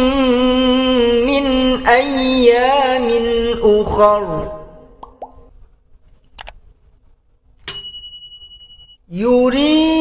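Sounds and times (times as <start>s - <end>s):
bright bell ding: 7.7s - 9.0s.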